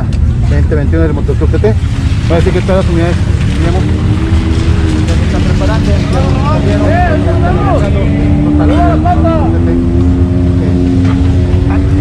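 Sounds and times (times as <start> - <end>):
vehicle engines idling: 0.0 - 12.0.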